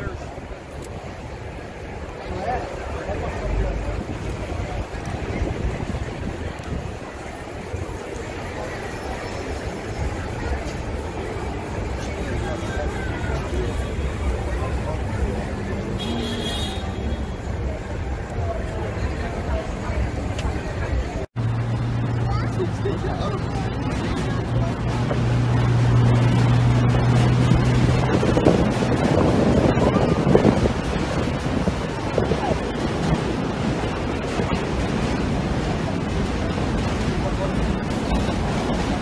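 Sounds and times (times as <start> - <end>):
bus and traffic rumble: 0.0 - 39.0
crowd chatter: 0.0 - 39.0
wind buffeting microphone: 3.0 - 15.9, 23.2 - 39.0.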